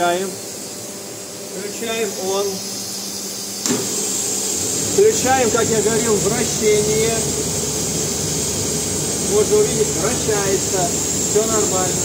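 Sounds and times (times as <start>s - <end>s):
steady rushing hiss of equipment: 0.0s - 12.0s.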